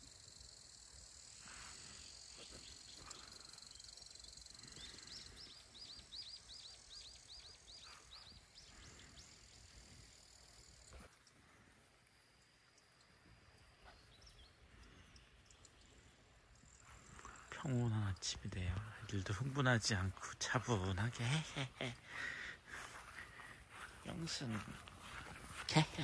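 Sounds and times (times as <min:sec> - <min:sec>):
high insect drone: 0:00.0 - 0:26.0
small bird chirping: 0:02.1 - 0:11.4, 0:12.7 - 0:20.5.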